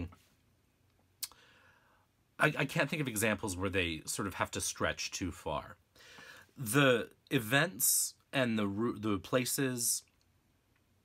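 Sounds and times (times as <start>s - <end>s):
person speaking: 0.0s - 0.3s, 6.6s - 10.1s.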